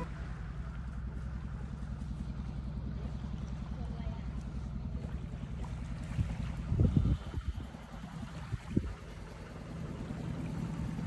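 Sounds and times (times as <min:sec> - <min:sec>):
boat engine chugging: 0:00.0 - 0:11.0.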